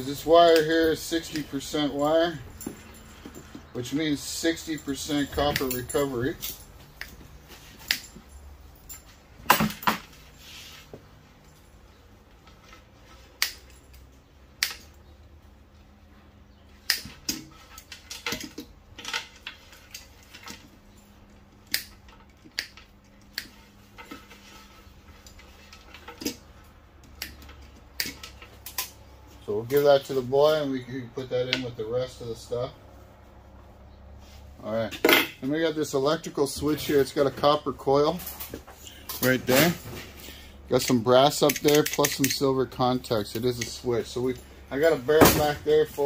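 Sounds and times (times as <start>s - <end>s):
small metallic clinks: 0.1s - 10.0s, 40.8s - 42.5s
wire cutters snipping wires: 41.3s - 42.4s.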